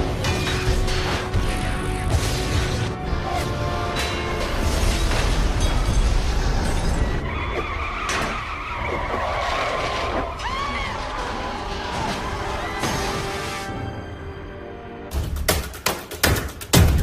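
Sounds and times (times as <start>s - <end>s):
tyres skidding and screeching: 0.0s - 14.6s.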